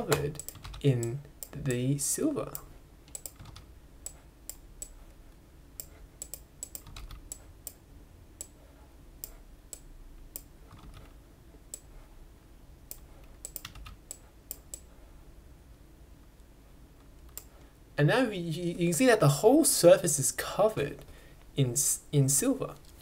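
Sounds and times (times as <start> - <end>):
computer keyboard and mouse clicks: 0.1 - 1.6, 2.5 - 5.0, 5.8 - 7.8, 9.2 - 11.9, 12.9 - 14.9, 17.0 - 17.6.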